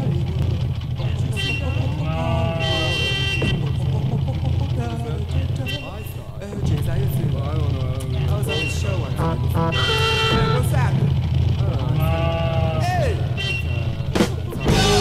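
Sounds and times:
sliding tones: 0.0 - 15.0
steady low drone: 0.0 - 15.0
voices: 0.0 - 15.0
rock band playing: 14.1 - 15.0.

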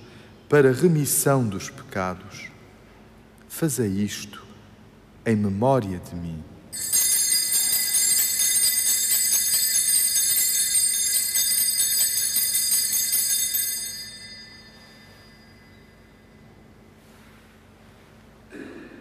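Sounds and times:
small bells ringing rapidly: 6.8 - 16.3.

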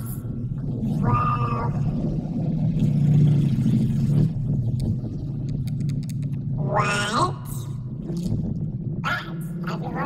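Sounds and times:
faint clicks: 5.5 - 6.4.

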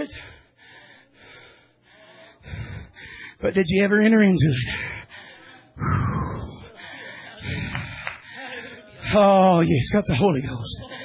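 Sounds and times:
man breathing hard: 0.0 - 3.4, 4.6 - 9.1.

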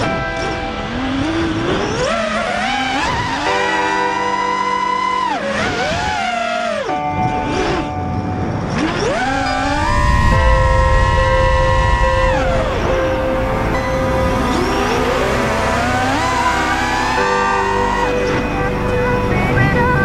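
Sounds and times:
background music: 0.0 - 20.0
drone motors whining: 0.0 - 20.0.

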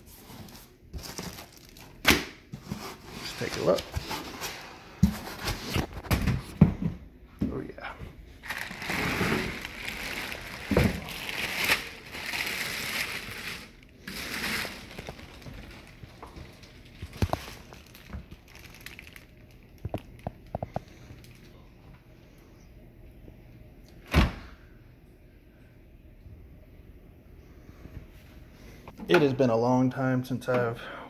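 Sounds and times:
packing material rustling: 0.1 - 2.0, 8.4 - 21.5.

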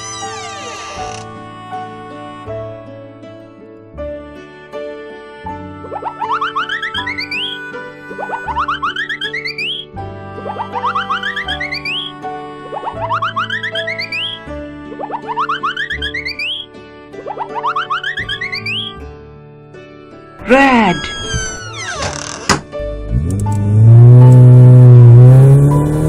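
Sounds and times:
children's background music: 4.2 - 21.2
quick upward-sliding cartoon tones: 5.9 - 7.6, 8.2 - 9.8, 10.4 - 12.1, 12.7 - 19.0.

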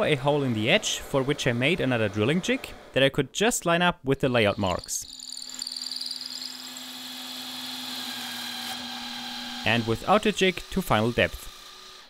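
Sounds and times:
cordless drill boring into wood: 4.5 - 12.0.

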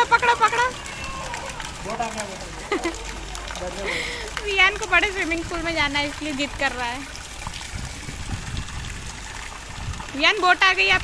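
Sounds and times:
pool water splashing: 0.0 - 11.0.

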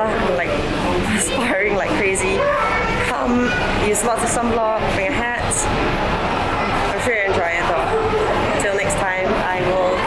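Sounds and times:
steady background noise: 0.0 - 10.0
woman speaking: 1.1 - 2.4, 3.0 - 5.7, 6.9 - 7.9, 8.6 - 10.0.

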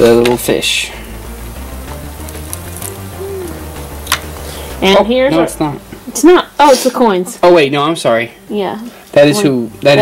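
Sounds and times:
background music with bass line: 0.0 - 6.1.

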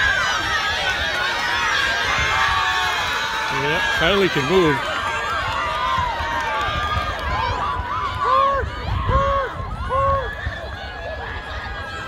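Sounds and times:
spectators cheering and shouting: 0.0 - 12.0.

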